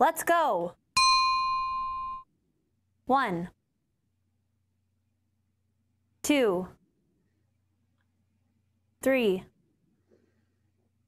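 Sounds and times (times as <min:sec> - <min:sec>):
bell-like ding chime: 0:01.0 - 0:02.3.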